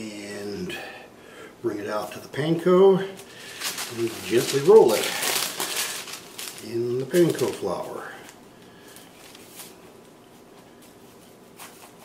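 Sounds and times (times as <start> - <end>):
crumbs rustling and crunching: 3.2 - 10.1.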